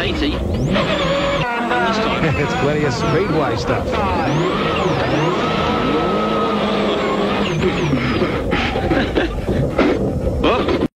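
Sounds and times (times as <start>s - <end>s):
rally car engine revving: 0.0s - 10.9s.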